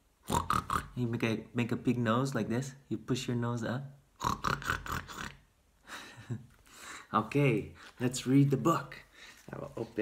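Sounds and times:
man snorting like a pig: 0.3s - 1.0s, 4.2s - 5.5s.

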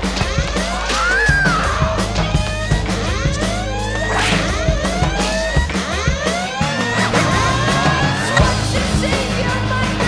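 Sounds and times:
music with steady bass line: 0.0s - 10.0s.

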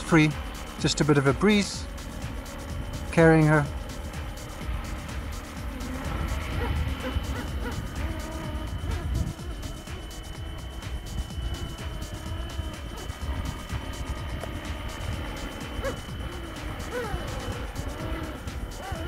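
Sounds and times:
helicopter motor whine: 0.0s - 19.0s
wind rumble on microphone: 0.0s - 19.0s.

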